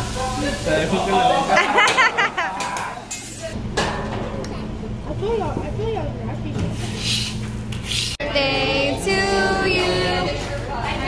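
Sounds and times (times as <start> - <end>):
laughter: 1.1 - 3.0
voices: 8.2 - 11.0.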